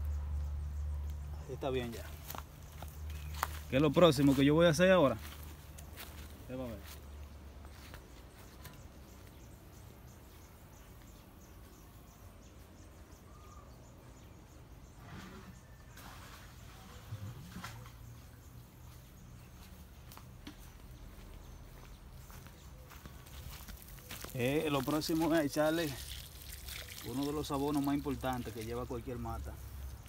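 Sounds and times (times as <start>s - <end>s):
faint chirp: 7.6s - 24.3s.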